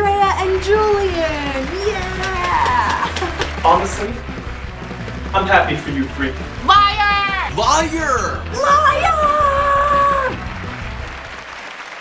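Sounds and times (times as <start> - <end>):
applause: 0.0 - 4.7, 9.1 - 12.0
music: 0.0 - 12.0.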